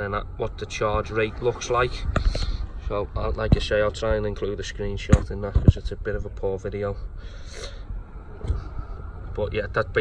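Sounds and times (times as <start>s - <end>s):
person breathing close to microphone: 2.1s - 2.8s, 7.2s - 8.0s.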